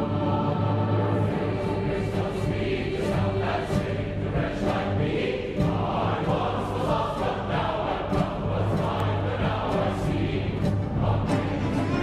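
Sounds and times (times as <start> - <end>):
children's choir singing: 0.0 - 12.0
string accompaniment with violins: 0.0 - 12.0.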